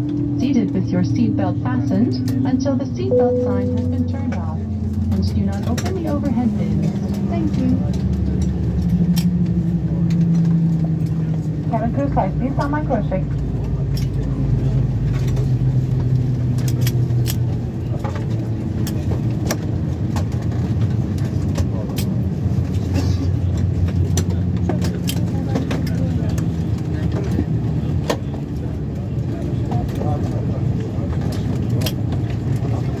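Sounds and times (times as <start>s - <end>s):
low aircraft engine hum: 0.0s - 33.0s.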